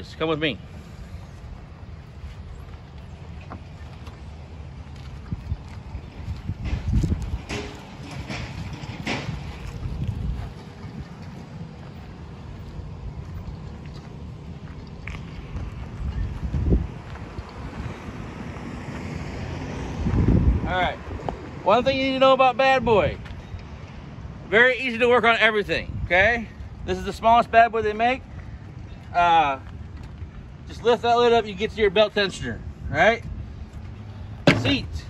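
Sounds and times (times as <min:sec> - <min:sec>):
wind buffeting microphone: 0:00.6 - 0:24.5, 0:25.6 - 0:35.0.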